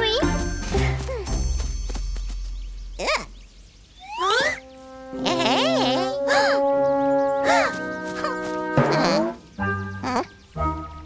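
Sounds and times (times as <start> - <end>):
cartoon swooping pitched effects: 4.0 - 4.6.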